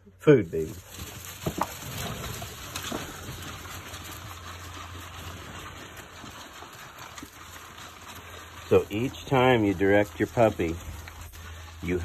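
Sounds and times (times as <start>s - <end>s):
puppies crunching dry food: 0.0s - 12.0s
puppies scrambling over shavings: 0.5s - 12.0s.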